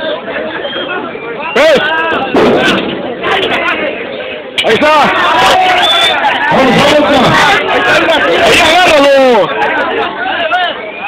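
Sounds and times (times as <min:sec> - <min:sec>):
crowd noise: 0:00.0 - 0:11.0.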